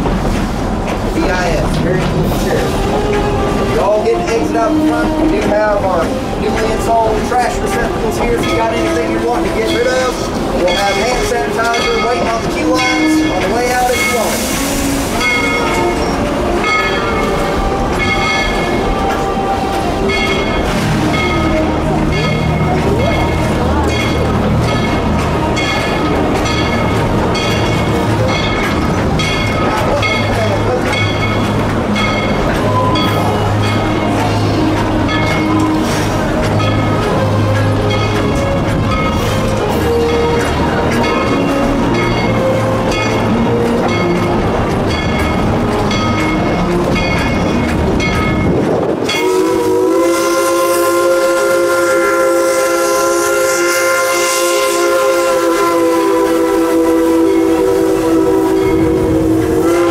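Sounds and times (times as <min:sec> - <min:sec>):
train wheel clicks on track: 0:00.0 - 0:59.9.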